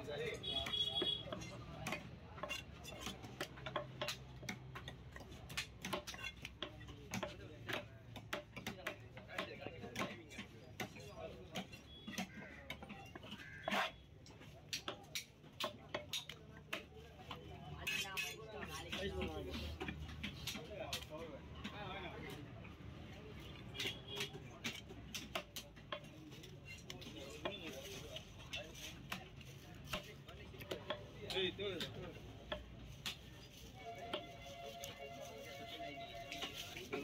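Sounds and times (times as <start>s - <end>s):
people talking: 0.0s - 3.4s, 8.6s - 13.2s, 14.6s - 37.0s.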